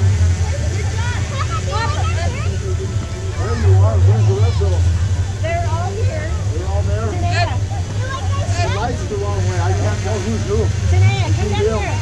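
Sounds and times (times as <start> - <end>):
people talking: 0.0 - 12.0
race car engine idling: 0.0 - 12.0.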